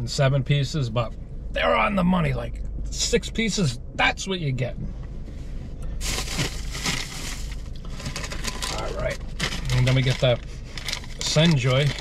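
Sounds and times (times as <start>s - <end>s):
low steady hum: 0.0s - 12.0s
food bag rustling: 6.0s - 12.0s.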